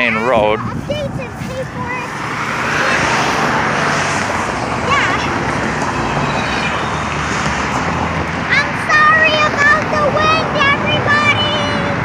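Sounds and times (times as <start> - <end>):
road traffic passing: 0.0 - 12.0
vehicle passing close: 0.3 - 12.0.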